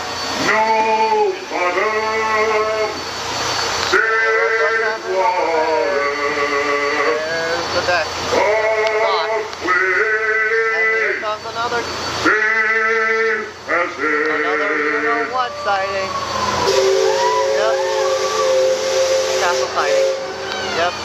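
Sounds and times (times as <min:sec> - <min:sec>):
man singing drawn-out calls: 0:00.4 - 0:03.0, 0:03.9 - 0:07.7, 0:08.3 - 0:11.2, 0:12.2 - 0:21.0.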